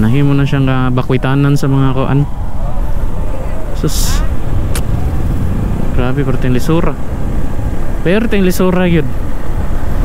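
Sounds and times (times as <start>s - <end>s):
wind rumble: 0.0s - 10.0s
motorcycle engine: 4.0s - 8.2s.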